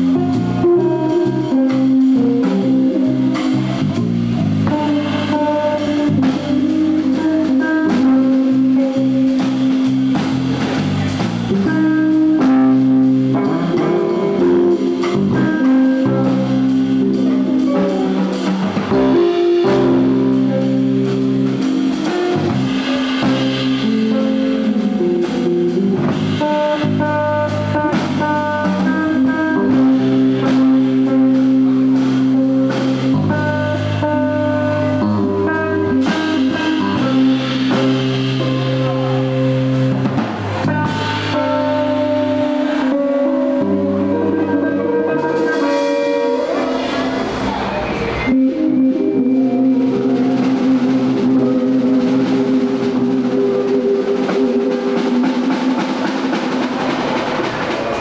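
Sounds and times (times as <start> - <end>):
drum kit: 0.0 - 58.0
electric bass: 0.0 - 58.0
electric guitars: 0.0 - 58.0.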